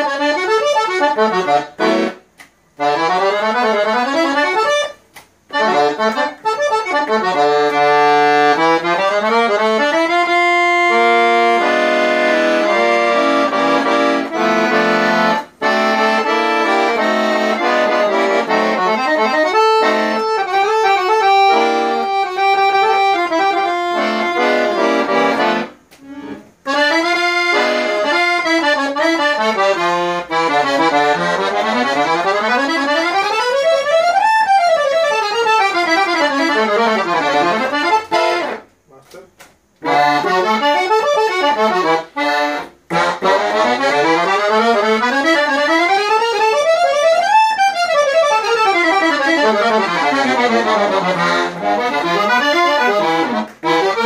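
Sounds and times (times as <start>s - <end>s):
piano accordion playing: 0.0s - 38.8s, 39.7s - 54.0s.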